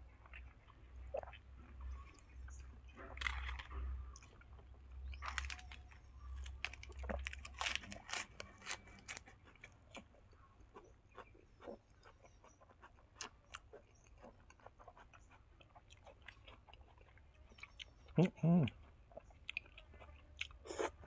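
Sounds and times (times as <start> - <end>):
chewing and crunching: 0.0 - 21.0
lettuce leaf tearing: 6.4 - 9.3.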